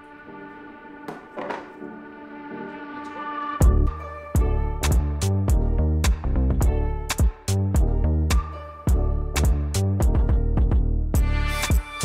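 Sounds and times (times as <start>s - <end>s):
background music with chords: 0.0s - 12.0s.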